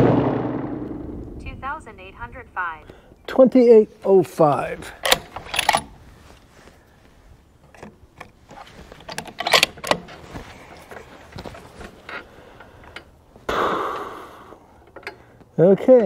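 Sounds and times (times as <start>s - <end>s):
rustling: 4.7s - 13.4s
rifle bolt clicks and clacks: 5.0s - 5.9s, 9.0s - 10.1s.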